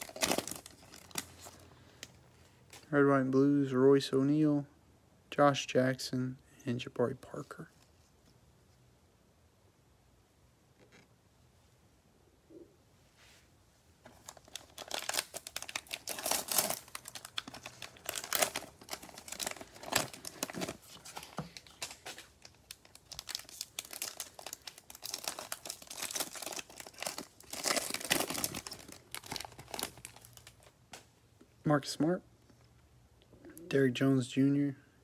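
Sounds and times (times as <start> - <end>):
plastic wrapper tearing and crinkling: 0.0 - 1.6, 14.1 - 30.8.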